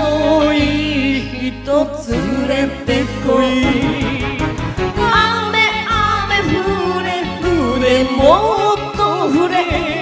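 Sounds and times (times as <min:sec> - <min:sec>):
backing track music: 0:00.0 - 0:10.0
person singing karaoke: 0:00.0 - 0:10.0.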